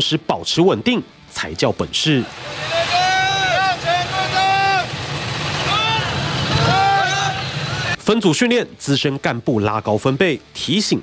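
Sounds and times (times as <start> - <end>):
motorcycle engines rumbling: 2.2 - 8.0
man shouting commands: 2.4 - 4.9.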